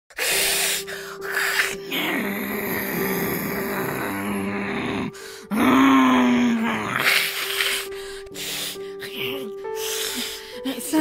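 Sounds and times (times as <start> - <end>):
person growling and hissing: 0.1 - 10.5.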